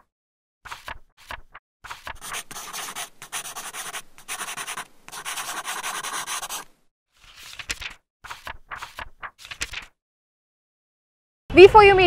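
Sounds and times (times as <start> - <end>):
paper rustling and crinkling: 0.7 - 10.0.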